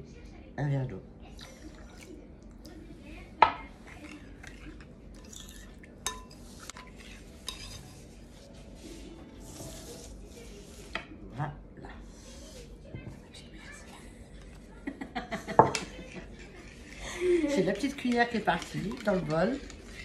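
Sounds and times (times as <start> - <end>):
spoon stirring in glass bowl: 3.4 - 11.1, 15.4 - 20.0
spoon clinking on glass: 5.3 - 6.9.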